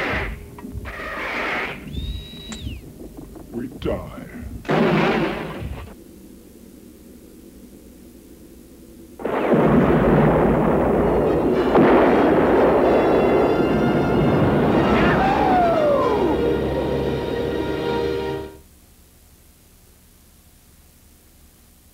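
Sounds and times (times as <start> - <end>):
sudden explosion blast: 0.0 - 6.0, 9.2 - 16.4
sustained explosion roar: 0.0 - 6.0, 9.2 - 18.0
low hum: 0.0 - 21.6
background music: 10.7 - 18.6.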